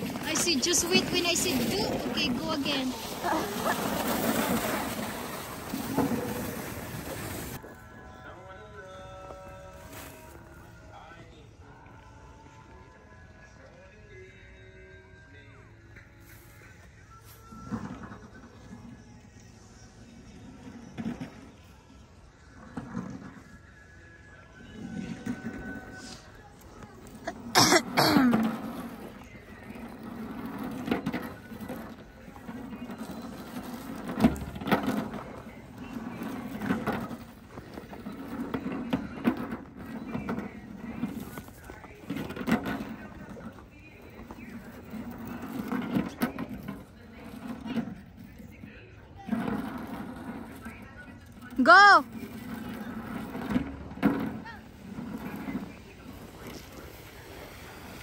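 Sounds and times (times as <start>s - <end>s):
people talking and shouting: 0.0s - 14.4s, 19.7s - 58.0s
music: 0.0s - 56.0s.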